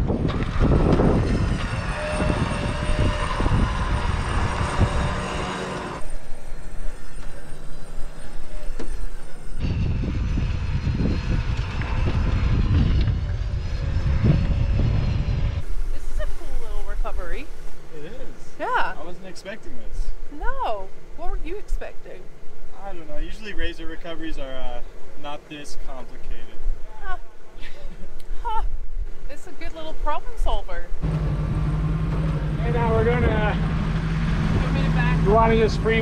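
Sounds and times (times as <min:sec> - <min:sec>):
electric winch whining under load: 0:00.0 - 0:16.2.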